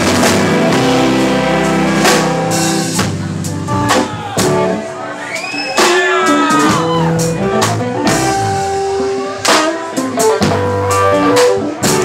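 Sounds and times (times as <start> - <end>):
drum kit hits: 0.0 - 4.8
electric guitar notes: 0.0 - 5.2.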